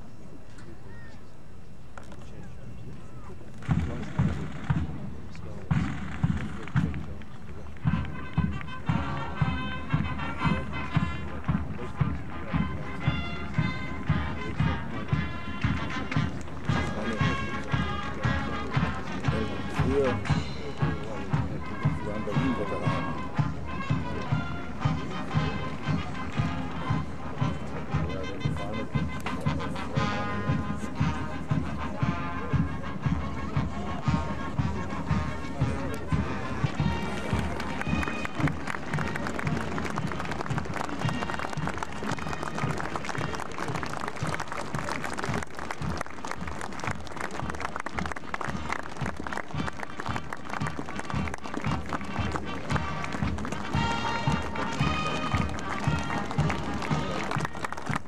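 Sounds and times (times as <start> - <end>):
wind instruments: 2.0 - 58.0
steady drum beat: 3.6 - 58.0.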